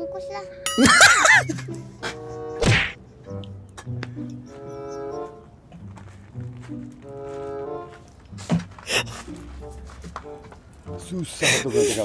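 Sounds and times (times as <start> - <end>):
melancholy background music: 0.0 - 12.0
man laughing loudly: 0.8 - 1.7
sharp slap-like hit: 2.6 - 3.0.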